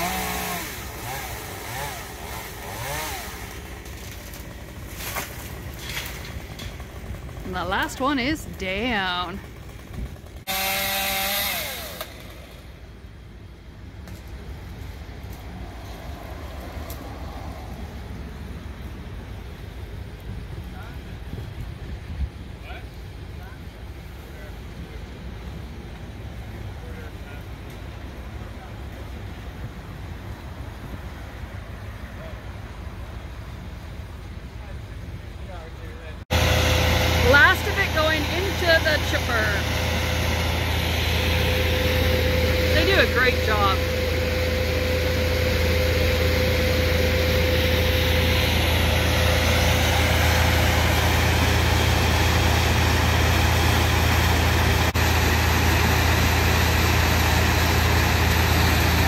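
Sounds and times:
chainsaw running: 0.0 - 12.9, 36.3 - 59.0
steady engine hum: 0.0 - 59.0.

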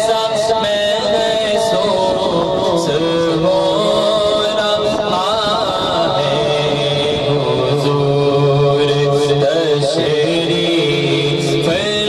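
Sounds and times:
low droning backing: 0.0 - 12.0
man singing into microphone: 0.0 - 12.0.

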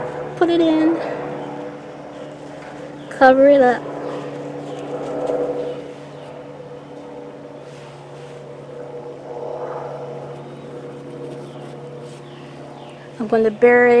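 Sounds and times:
steady mechanical hum: 0.0 - 14.0
soil rustling under hands: 4.1 - 6.3, 7.6 - 8.6, 10.9 - 12.6.

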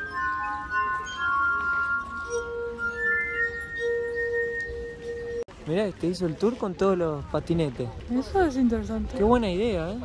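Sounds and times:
glass harp ringing tones: 0.0 - 5.5.

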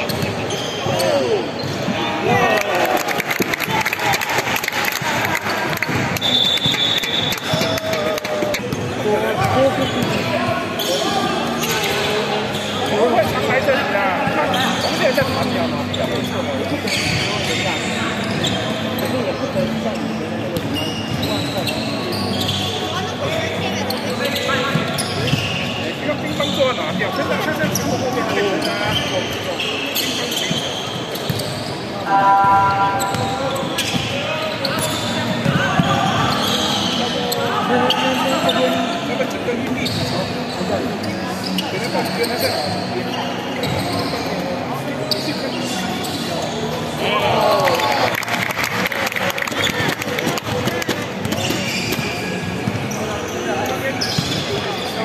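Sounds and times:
players and spectators voices: 0.0 - 55.0
held call or tone: 32.1 - 33.5.

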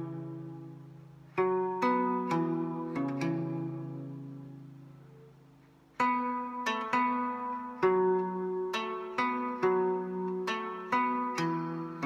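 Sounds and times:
plucked strings: 0.0 - 12.0.

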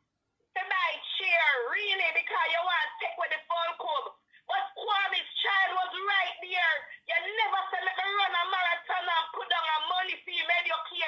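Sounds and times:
woman talking: 0.6 - 11.0.

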